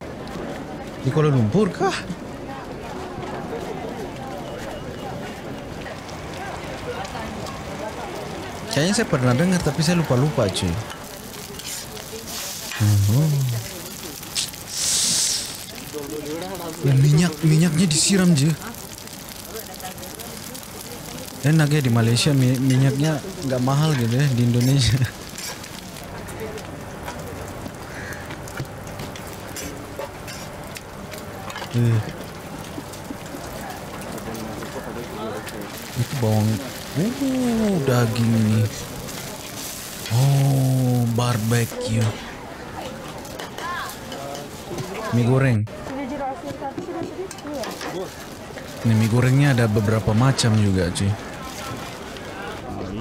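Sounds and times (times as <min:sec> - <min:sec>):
crowd chatter: 0:00.0 - 0:53.0
faint voices: 0:00.0 - 0:53.0
sizzling on griddle: 0:00.1 - 0:53.0
metal tongs scraping in woks: 0:10.8 - 0:17.4, 0:21.8 - 0:26.0, 0:29.5 - 0:30.6.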